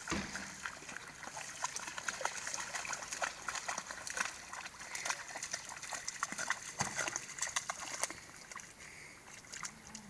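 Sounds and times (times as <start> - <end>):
dog splashing through water: 0.0 - 10.0.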